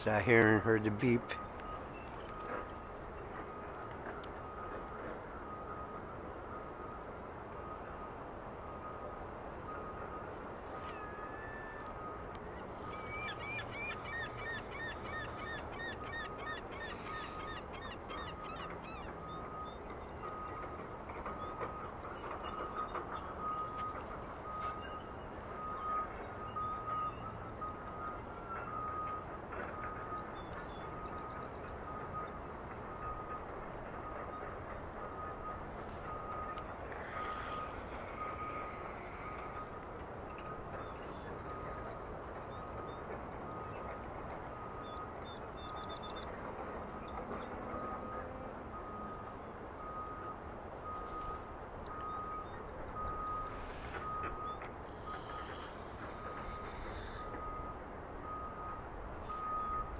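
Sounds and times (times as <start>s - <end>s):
birds chirping: 0.0s - 5.1s, 10.8s - 51.3s, 51.9s - 59.9s.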